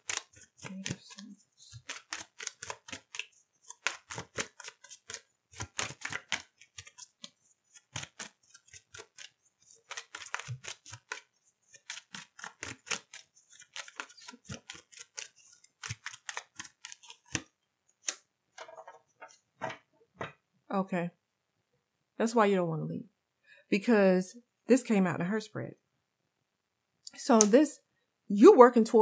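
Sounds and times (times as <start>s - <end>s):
cards being shuffled: 0.0s - 19.8s.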